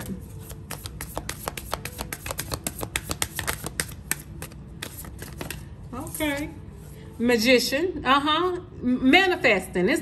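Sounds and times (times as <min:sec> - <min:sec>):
cards being shuffled: 0:00.0 - 0:06.5.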